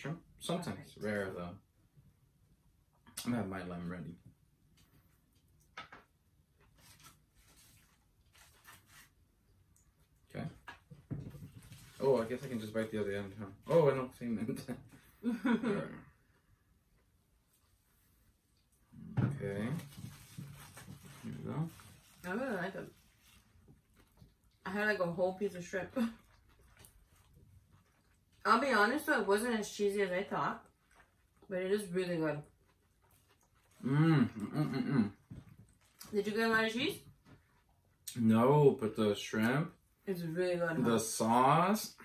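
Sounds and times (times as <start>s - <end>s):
person laughing: 14.4s - 16.0s, 34.0s - 35.1s
people chewing food: 23.0s - 24.7s, 26.0s - 28.5s, 30.1s - 36.2s
chewing crispy food: 32.4s - 36.1s.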